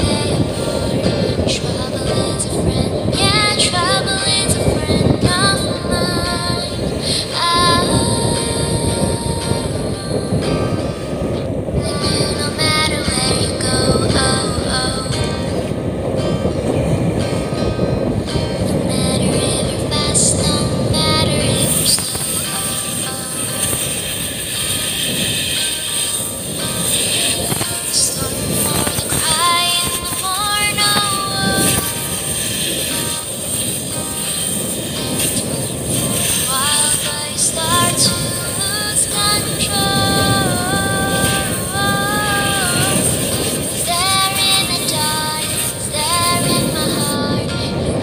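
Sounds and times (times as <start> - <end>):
motor boat rumble: 0.0 - 48.0.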